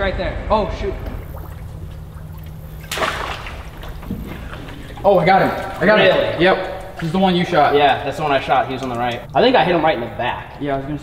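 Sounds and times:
low engine hum: 0.6 - 10.6
net splashing into water: 1.0 - 9.5.

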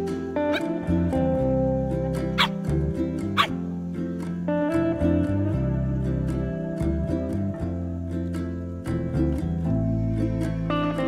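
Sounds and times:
guitar background music: 0.0 - 11.0
puppy yelping: 0.5 - 0.7, 2.4 - 2.6, 3.4 - 3.6.

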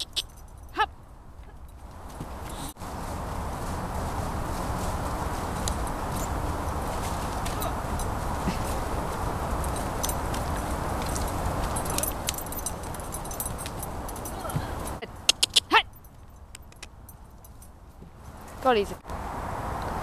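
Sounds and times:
wind rumbling on microphone: 1.2 - 15.0
hoofbeats on grass: 1.6 - 18.6
tack jingling: 7.6 - 18.6.

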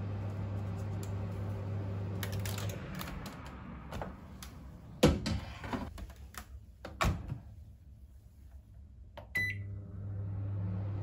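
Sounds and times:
microwave humming: 0.0 - 4.2, 9.2 - 11.0.

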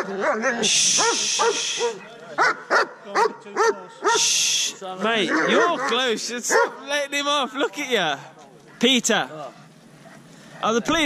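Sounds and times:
dog barking: 0.0 - 4.3, 5.2 - 6.9.

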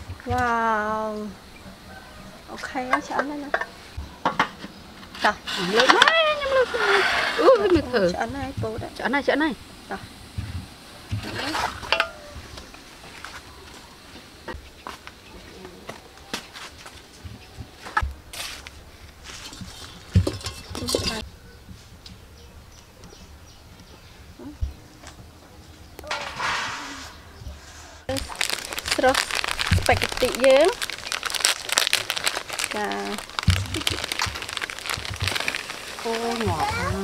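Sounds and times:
people talking: 0.2 - 1.4, 2.5 - 3.6, 5.2 - 10.1, 11.1 - 11.8, 20.8 - 21.2, 28.1 - 30.8, 32.7 - 34.1, 36.0 - 37.0
cooking pot and utensils knocking: 2.9 - 4.7, 20.1 - 21.2.

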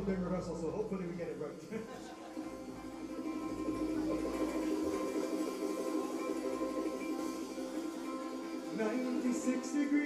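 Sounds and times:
ukulele playing: 1.7 - 10.0.

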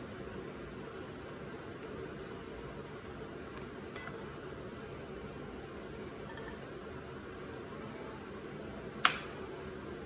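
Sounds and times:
steady room hum: 0.0 - 10.0.

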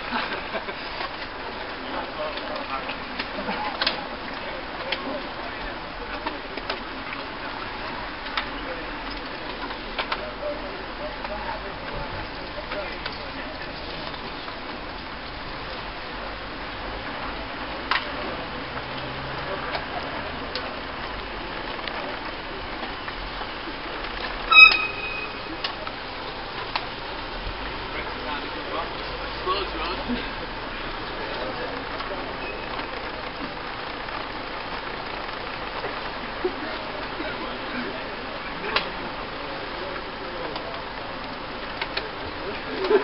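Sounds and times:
voices chattering: 0.0 - 43.0
tyre hiss on wet road: 5.8 - 43.0
brief loud sound: 24.5 - 25.6.

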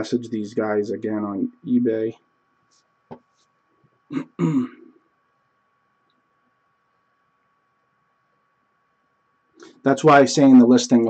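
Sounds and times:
man clearing his throat: 4.1 - 4.9.

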